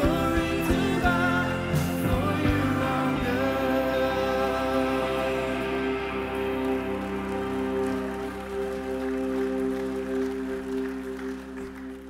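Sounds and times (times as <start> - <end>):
band holding sustained chord: 0.0 - 12.0.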